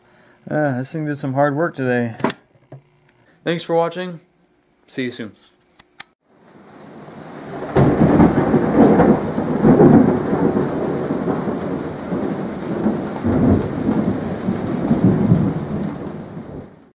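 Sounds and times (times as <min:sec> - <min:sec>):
steady rain: 0:06.2 - 0:16.9
thunder rumbling: 0:06.5 - 0:16.9.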